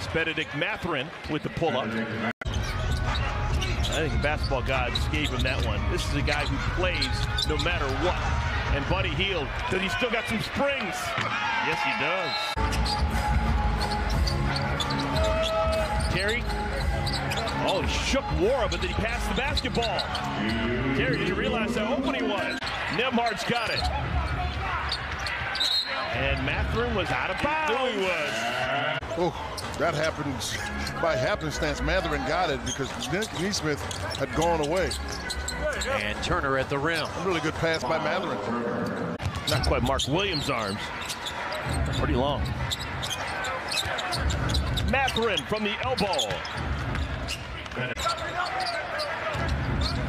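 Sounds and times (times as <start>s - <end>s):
arena crowd noise: 0.0s - 50.0s
crowd murmur: 20.2s - 22.6s.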